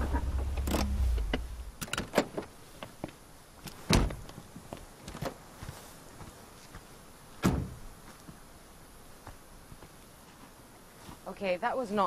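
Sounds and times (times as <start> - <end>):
car engine and tyres rumble: 0.0 - 8.5
sharp thump: 7.4 - 7.8.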